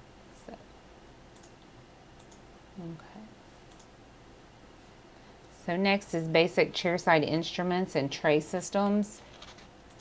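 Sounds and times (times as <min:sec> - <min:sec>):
faint clicks: 0:01.3 - 0:02.4, 0:03.7 - 0:03.9.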